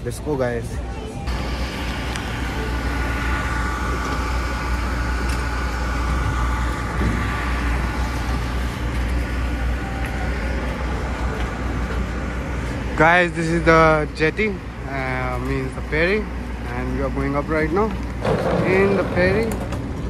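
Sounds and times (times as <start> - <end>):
faint steady whine: 0.0 - 20.0
ferry engines rumbling: 0.0 - 20.0.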